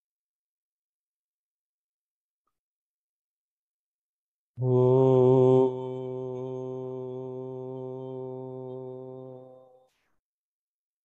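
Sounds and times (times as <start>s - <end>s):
man chanting om: 4.6s - 9.9s.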